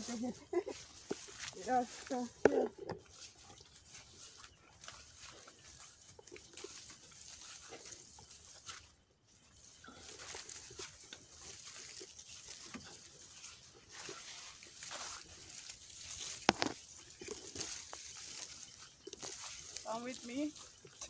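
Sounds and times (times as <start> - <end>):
faint footsteps: 0.0 - 21.0
leaves brushing: 0.0 - 21.0.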